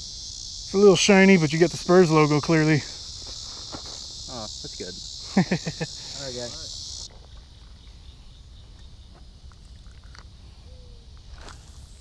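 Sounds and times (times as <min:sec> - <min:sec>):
faint insects chirring: 0:00.0 - 0:12.0.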